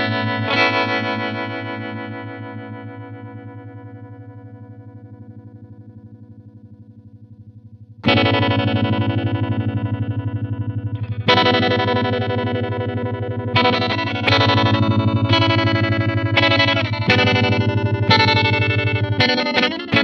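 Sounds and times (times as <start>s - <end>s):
electric guitar chords with tremolo: 0.0s - 20.0s.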